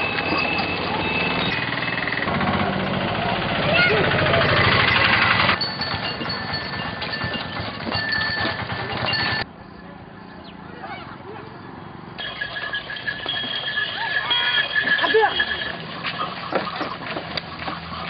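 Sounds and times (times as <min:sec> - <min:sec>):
fast mechanical rattle: 0:01.6 - 0:09.4
people calling out: 0:13.3 - 0:15.8.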